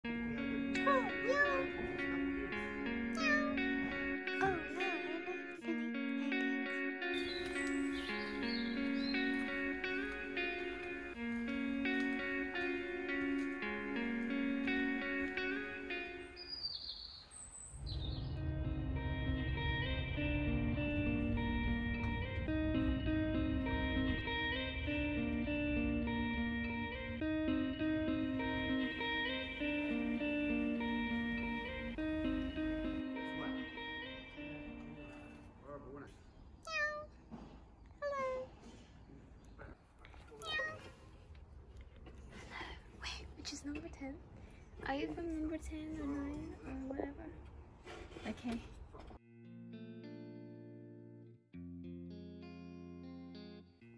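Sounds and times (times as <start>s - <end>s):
music: 0.0s - 16.7s, 17.8s - 36.1s, 49.2s - 53.9s
outdoor background: 0.0s - 53.9s
cat meowing: 3.2s - 3.9s, 36.6s - 37.2s, 40.3s - 41.0s
high bird chirps: 7.1s - 9.8s, 16.3s - 18.4s.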